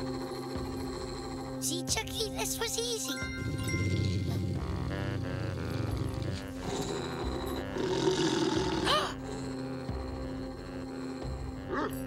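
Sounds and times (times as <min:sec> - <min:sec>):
dog growling: 0:00.0 - 0:01.9, 0:03.3 - 0:12.0
tense cartoon music: 0:00.0 - 0:12.0.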